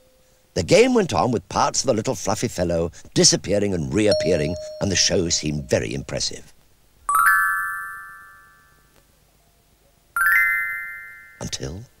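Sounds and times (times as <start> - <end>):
bell-like chime: 4.1 - 5.8.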